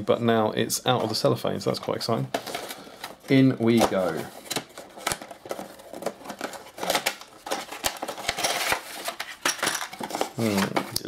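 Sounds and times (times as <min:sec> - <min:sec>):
cardboard box rustling: 0:02.4 - 0:11.0
plastic sprues clicking and clattering: 0:02.4 - 0:11.0.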